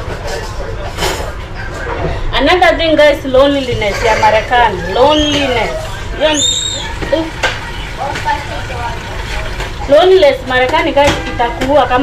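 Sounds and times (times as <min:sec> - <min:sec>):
faint voices: 0:03.6 - 0:12.0.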